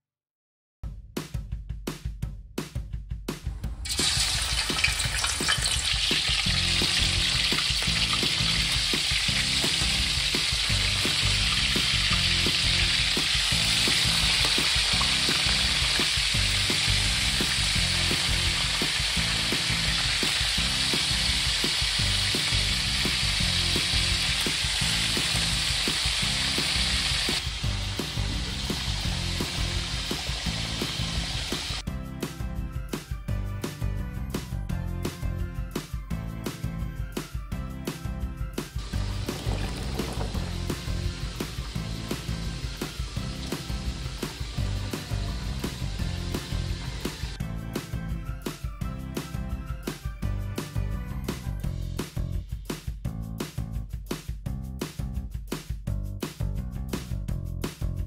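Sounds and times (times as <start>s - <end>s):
background music with beat: 0.8s - 58.0s
meat sizzling in oil: 3.8s - 31.8s, 38.7s - 47.4s.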